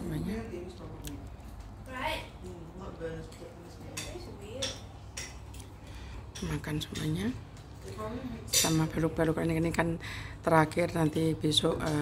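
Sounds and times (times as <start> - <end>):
low room hum: 0.0 - 12.0
cutlery clinking on dishes: 3.2 - 5.6, 8.5 - 9.0.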